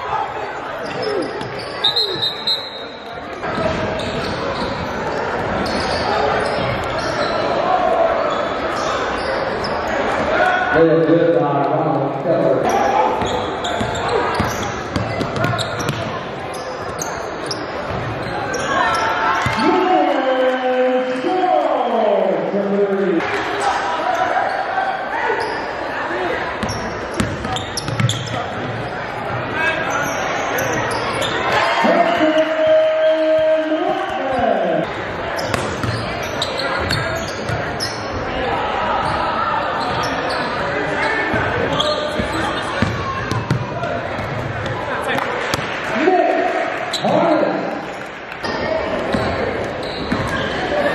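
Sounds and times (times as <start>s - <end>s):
crowd voices echoing: 0.0s - 50.9s
sneaker squeaks: 0.8s - 10.3s, 12.6s - 19.8s, 23.5s - 25.8s, 26.5s - 29.0s, 29.6s - 31.7s, 35.2s - 38.3s, 39.0s - 44.8s, 46.9s - 47.2s, 48.4s - 50.9s
basketball bouncing on wood floor: 42.2s - 44.8s.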